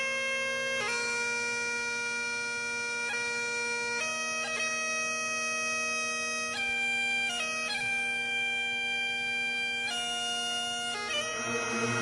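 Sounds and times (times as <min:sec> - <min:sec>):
bagpipes playing: 0:00.0 - 0:12.0.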